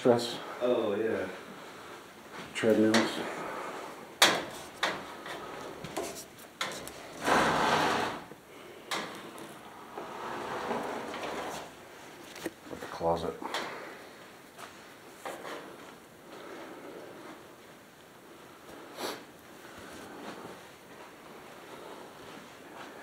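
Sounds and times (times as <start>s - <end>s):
scrape: 6.0s - 8.3s, 10.0s - 11.7s.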